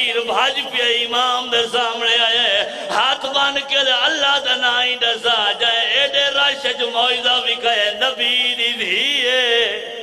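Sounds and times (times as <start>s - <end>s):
man chanting mournfully: 0.0s - 10.0s.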